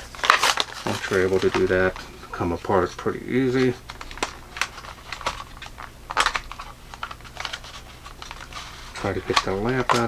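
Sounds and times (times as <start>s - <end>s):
plastic packaging crackling: 0.0s - 10.0s.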